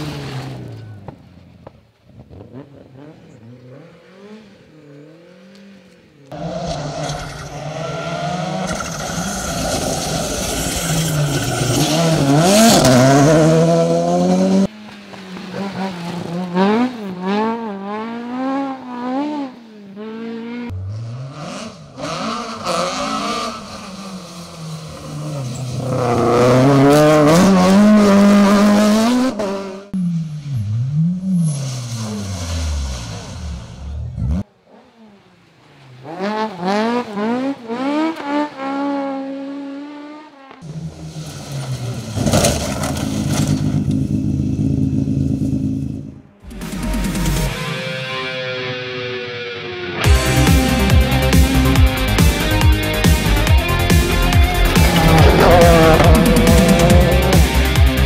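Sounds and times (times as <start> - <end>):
rally car engines revving: 0.0 - 58.0.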